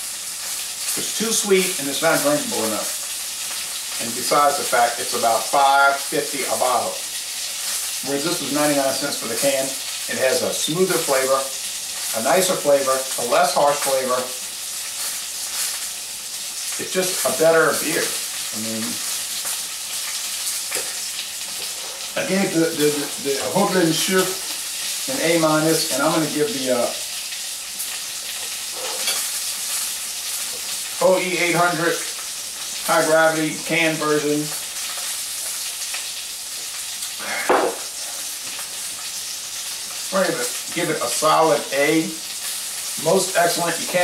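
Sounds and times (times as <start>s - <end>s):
food sizzling in hot oil: 0.0s - 44.0s
breathy exhale: 37.2s - 37.6s.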